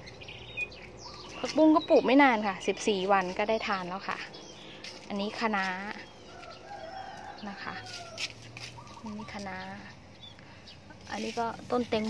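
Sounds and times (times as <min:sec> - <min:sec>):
rooster crowing: 0:06.3 - 0:08.4.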